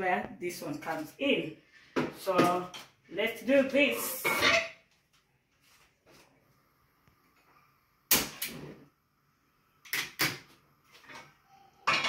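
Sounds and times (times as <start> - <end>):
faint handling sounds: 5.0 - 6.7.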